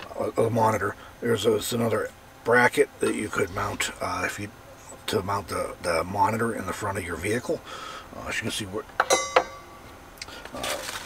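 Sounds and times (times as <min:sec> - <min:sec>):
metal hardware clinking: 0:09.0 - 0:09.9
packaging rustle: 0:10.4 - 0:11.0.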